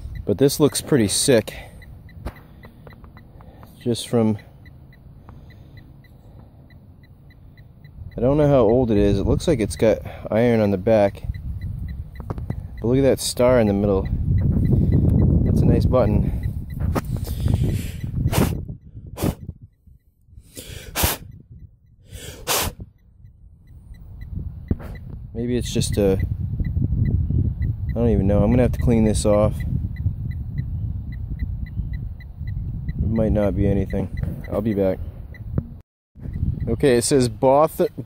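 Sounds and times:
faint high-pitched beeps: 0.0s - 16.9s, 22.9s - 38.0s.

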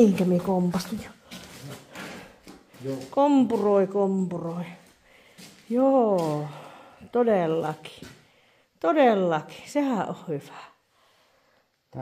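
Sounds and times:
person speaking: 0.0s - 2.1s, 2.7s - 4.9s.

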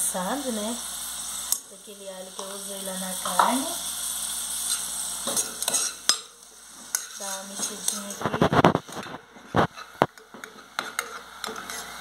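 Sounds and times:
onion and garlic sizzling in oil: 0.0s - 12.0s
metal spoon scraping a pot: 4.6s - 12.0s.

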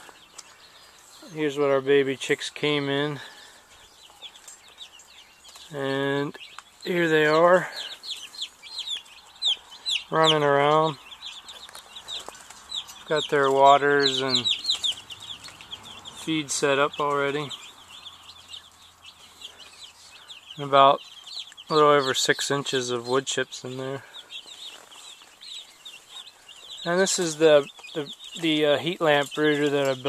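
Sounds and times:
chicks peeping: 0.0s - 30.0s.

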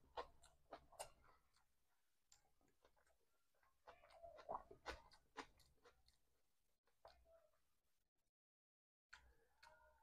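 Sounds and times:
man chewing wet clicks: 0.0s - 7.2s.

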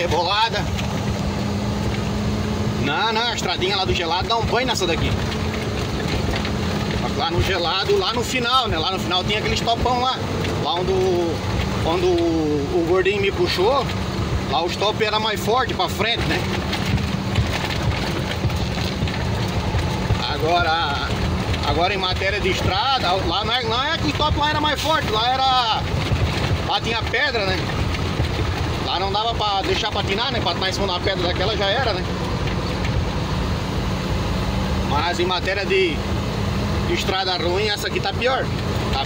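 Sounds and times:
knocks and rattles: 0.0s - 2.5s, 3.1s - 33.4s, 37.1s - 39.0s
truck engine and road rumble: 0.0s - 39.0s.

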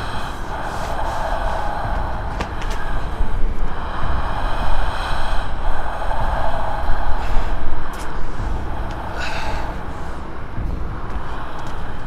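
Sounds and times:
low rumbling drone: 0.0s - 12.0s.

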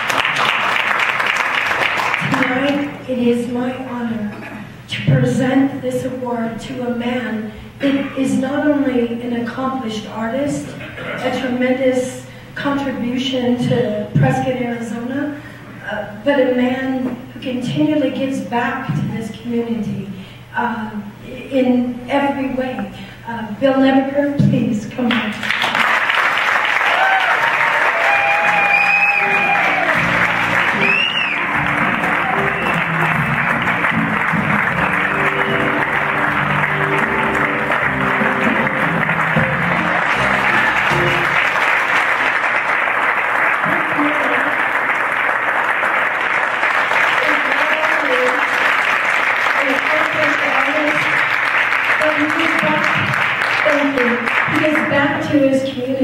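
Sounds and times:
audience applauding and cheering: 0.0s - 3.0s, 25.4s - 54.8s
live band playing: 28.4s - 42.2s
whistles: 28.5s - 29.5s, 30.8s - 31.5s, 32.4s - 32.9s.

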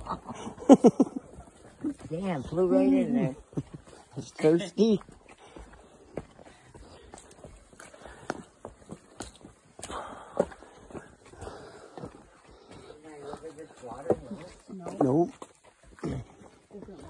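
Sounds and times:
footsteps on forest trail: 0.0s - 17.0s
footsteps knocking on wooden boards: 13.8s - 15.6s.

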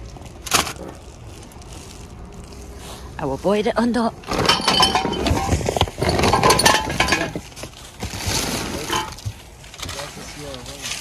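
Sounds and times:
shopping bags rustling: 0.0s - 11.0s
items clattering and clinking: 4.2s - 11.0s.

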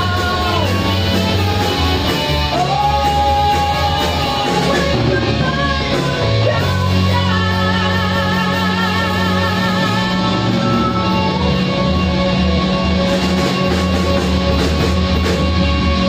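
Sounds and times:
man singing: 0.0s - 1.4s, 2.3s - 11.4s
rock band playing: 0.0s - 16.0s.

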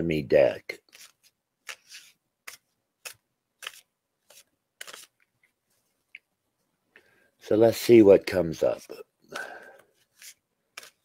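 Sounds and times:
cards shuffling: 0.8s - 6.3s, 9.7s - 11.0s.

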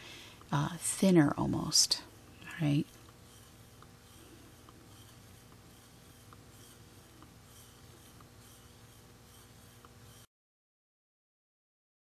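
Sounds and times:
stick scraping plastic cup: 2.4s - 10.3s.

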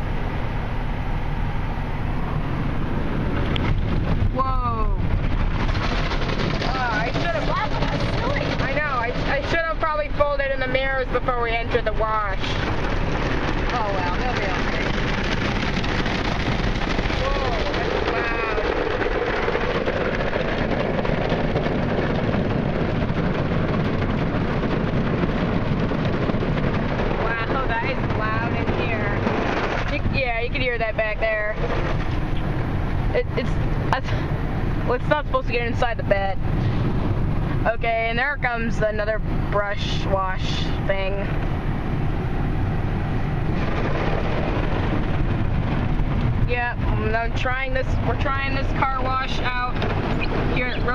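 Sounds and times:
deep rumble: 0.0s - 50.9s.

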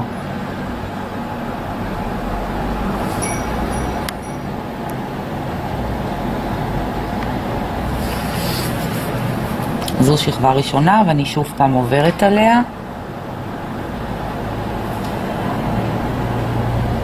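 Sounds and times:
low rumble and hiss: 0.0s - 17.0s.

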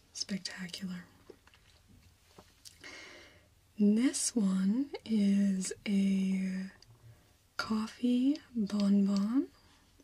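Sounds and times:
soft inhale: 2.8s - 3.6s.

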